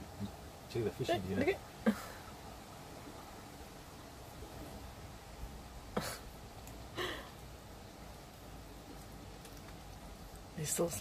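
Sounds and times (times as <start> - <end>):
soft hiss: 0.0 - 11.0.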